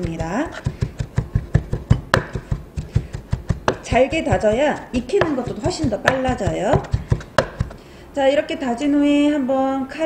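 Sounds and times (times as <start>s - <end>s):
knife chopping on wooden board: 0.0s - 7.8s.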